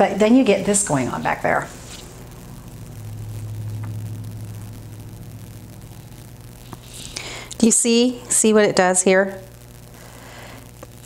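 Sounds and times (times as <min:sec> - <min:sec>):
faint hiss: 0:00.0 - 0:11.0
low background hum: 0:00.0 - 0:11.0.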